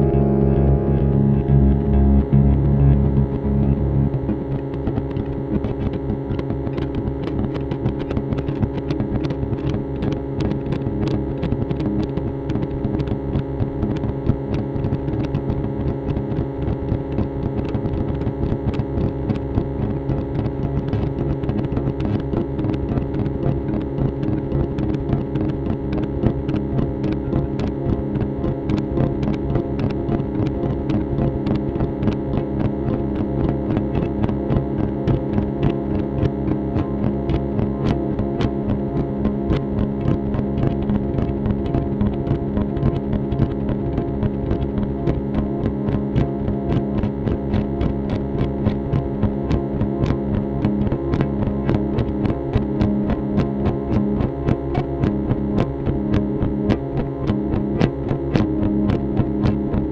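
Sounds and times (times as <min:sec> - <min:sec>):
droning electric guitar: 0:00.0 - 0:59.9.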